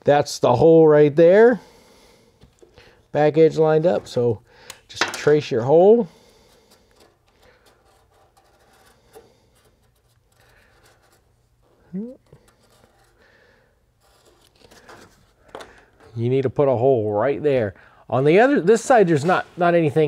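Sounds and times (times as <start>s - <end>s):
person speaking: 3.1s - 6.2s, 11.8s - 12.4s
marker scratching and rubbing: 7.6s - 11.3s, 12.4s - 13.2s.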